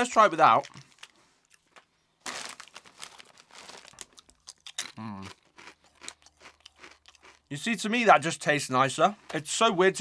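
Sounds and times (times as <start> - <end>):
chip crunching and chewing: 0.4 - 7.6
foil bag crinkling: 2.2 - 4.4.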